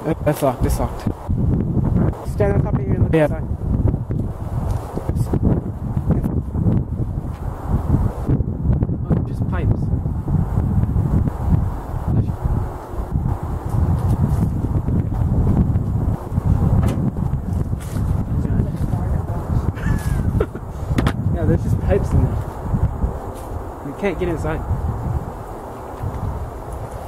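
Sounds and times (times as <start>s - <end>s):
wind rumbling on microphone: 0.0s - 27.0s
camera handling knocks and scrapes: 20.9s - 21.2s.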